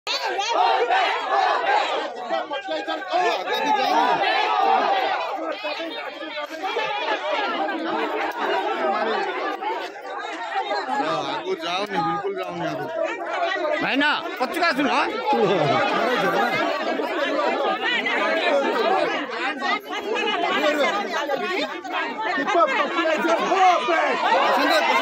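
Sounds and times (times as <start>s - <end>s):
crowd talking over one another: 0.0s - 25.0s.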